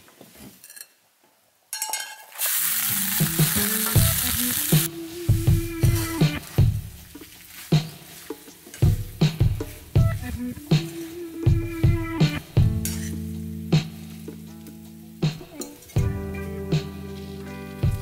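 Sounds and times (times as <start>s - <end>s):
food being stirred in pan: 2.3s - 4.9s
pasta sizzling in frying pan: 2.3s - 4.9s
background music: 2.5s - 18.0s.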